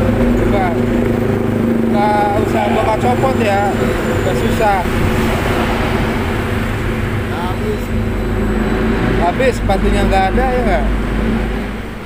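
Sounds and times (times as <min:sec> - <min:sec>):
motorcycle passing: 0:00.0 - 0:12.0
street traffic: 0:00.0 - 0:12.0.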